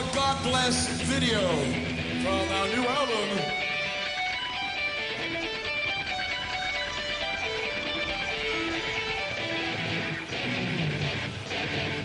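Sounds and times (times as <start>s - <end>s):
electric guitar solo melody: 0.0s - 12.0s.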